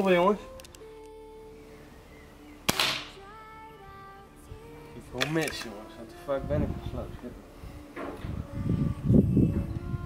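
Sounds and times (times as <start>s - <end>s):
soft background music: 0.0s - 10.0s
air rifle shot: 2.7s - 3.2s.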